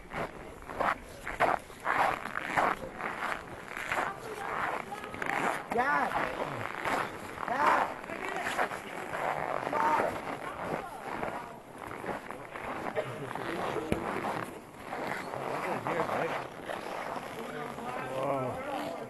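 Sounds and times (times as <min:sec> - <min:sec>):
people talking indistinctly: 0:00.0 - 0:19.0
rough background rustle: 0:00.0 - 0:19.0.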